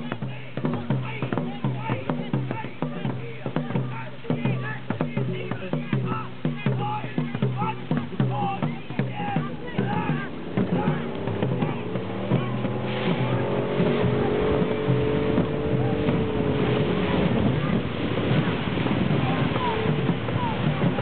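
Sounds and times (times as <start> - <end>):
motorboat engine running: 0.0 - 21.0
voices: 0.0 - 21.0.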